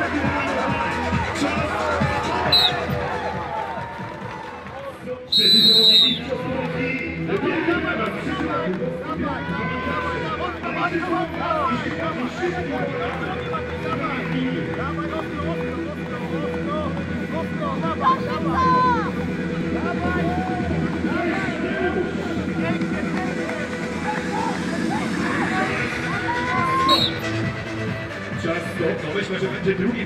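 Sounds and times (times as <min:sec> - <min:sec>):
background music: 0:00.0 - 0:30.0
crowd shouting and cheering: 0:00.0 - 0:30.0.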